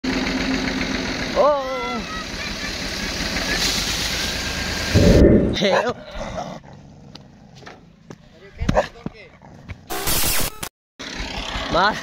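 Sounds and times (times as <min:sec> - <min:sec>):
tractor engine running: 0:00.1 - 0:05.9.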